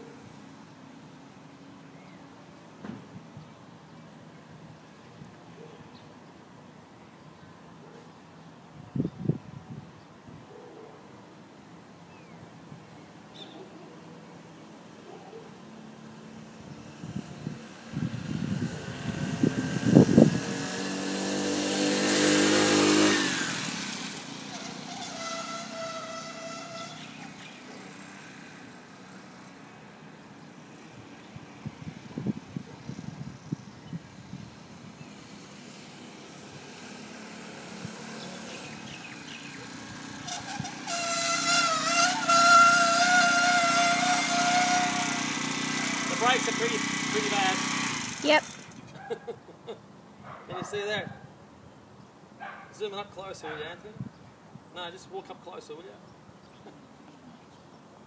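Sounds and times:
motorised bicycle engine passing: 15.8s - 49.2s
high-pitched brake squeal: 24.5s - 27.5s, 40.2s - 45.1s.

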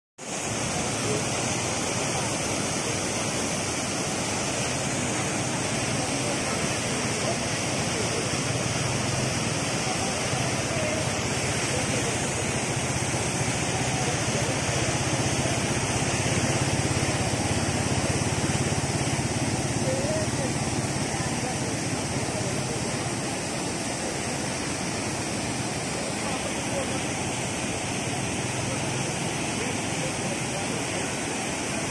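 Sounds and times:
floodwater rushing: 0.2s - 31.9s.

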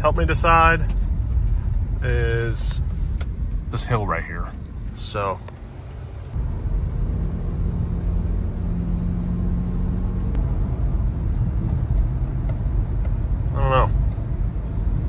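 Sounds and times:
car engine rumble: 0.0s - 15.0s
road noise inside car: 0.0s - 15.0s.

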